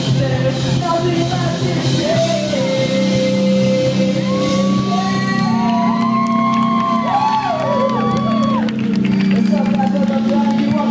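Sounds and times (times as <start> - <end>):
live rock band playing: 0.0 - 10.9
crowd cheering: 4.2 - 10.8.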